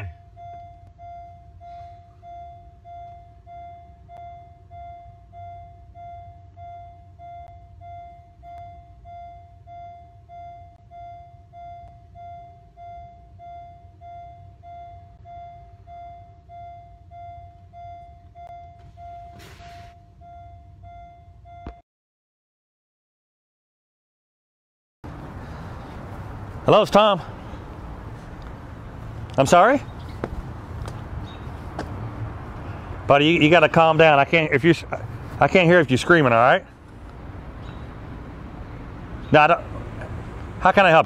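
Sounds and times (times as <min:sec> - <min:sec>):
car warning chime: 0:00.0 - 0:21.8.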